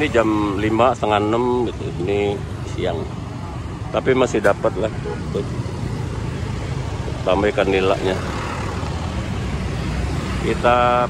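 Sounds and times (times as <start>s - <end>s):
scooters and truck driving past: 4.6s - 11.0s.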